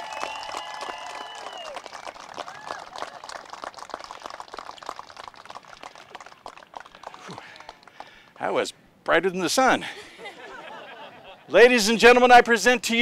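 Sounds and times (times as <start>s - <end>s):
small crowd clapping: 0.0s - 8.2s.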